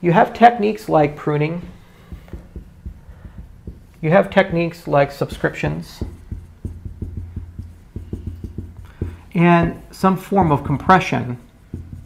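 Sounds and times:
marker tapping on whiteboard: 1.7 - 12.0.

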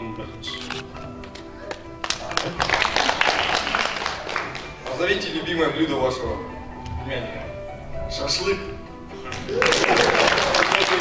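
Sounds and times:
music with sustained tones: 0.0 - 11.0
audience clapping: 1.2 - 5.4, 9.3 - 11.0.

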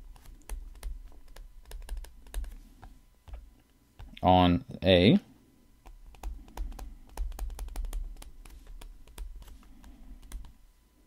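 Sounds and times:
stylus tapping on tablet screen: 0.1 - 4.2, 5.8 - 10.6.

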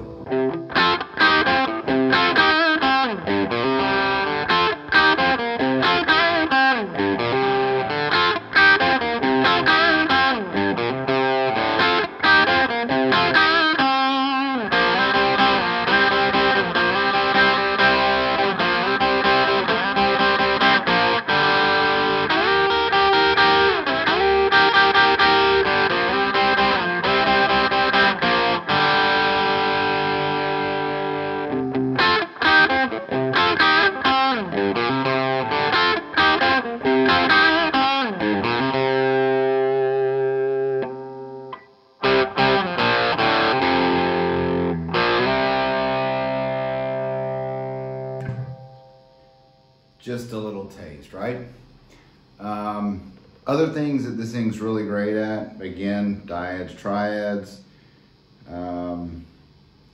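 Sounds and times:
overdriven electric guitar: 0.0 - 50.0.

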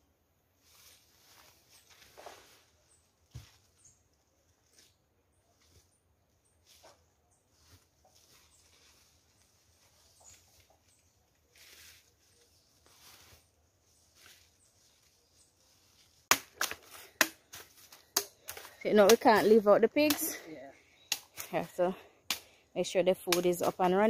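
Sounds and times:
sugar cane stalks cracking: 16.1 - 20.2, 21.1 - 21.6, 22.3 - 22.6.

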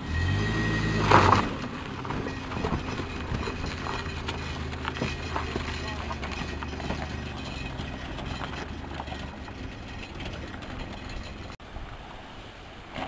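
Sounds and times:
van engine running: 0.0 - 11.6
tyres crunching over stones: 0.9 - 11.6.

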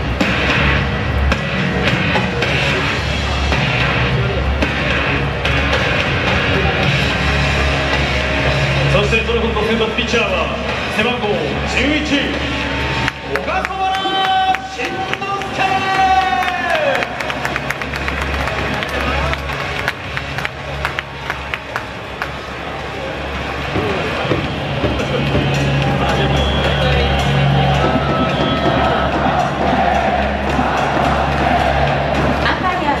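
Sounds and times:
music with pulsing bass beat: 0.0 - 13.6, 23.2 - 33.0
crowd murmur: 0.0 - 13.7, 14.7 - 33.0.

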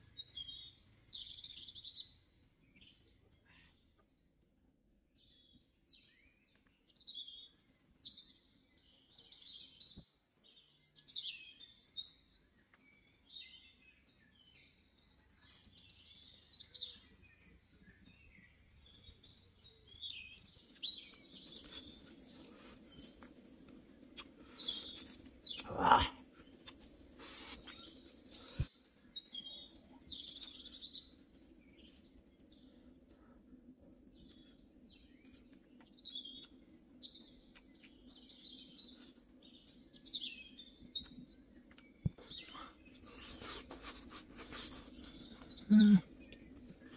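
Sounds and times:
birds chirping and calling: 34.2 - 46.9.

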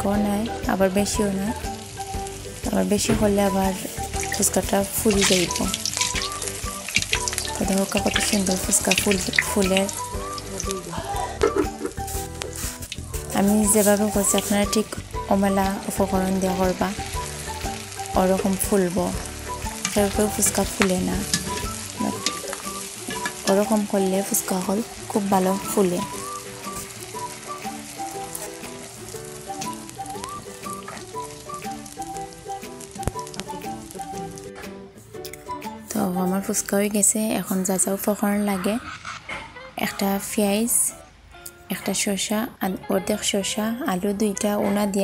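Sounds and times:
background music: 0.0 - 45.0
dough deep-frying in oil: 3.8 - 10.9, 11.7 - 34.4.

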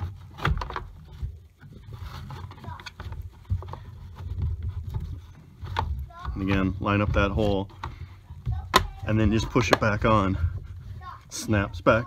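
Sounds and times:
rubbing and scuffing: 0.0 - 12.0.

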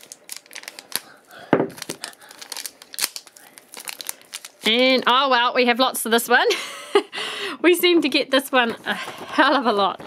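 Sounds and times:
foil bag crinkling and tearing: 0.0 - 5.3.

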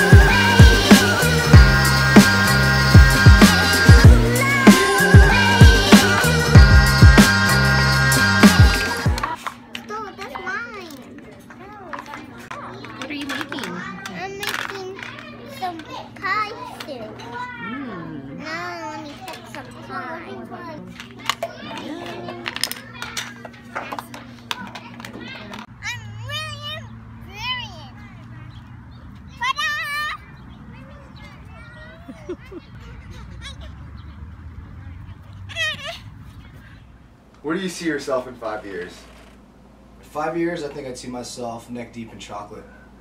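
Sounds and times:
young children talking and babbling: 0.0 - 37.3
child calling: 24.6 - 28.2, 29.3 - 34.0, 35.3 - 36.9
child shouting: 25.2 - 28.0, 29.3 - 32.6.

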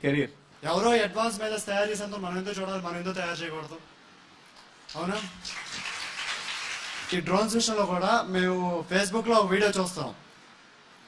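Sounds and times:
man speaking at a microphone: 4.9 - 5.4, 7.1 - 10.2
audience applauding: 4.9 - 7.6.

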